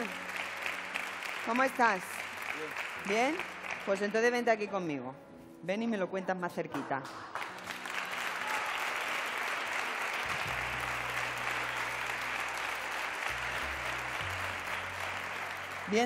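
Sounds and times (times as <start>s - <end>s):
audience applauding: 0.0s - 4.4s, 7.1s - 16.0s.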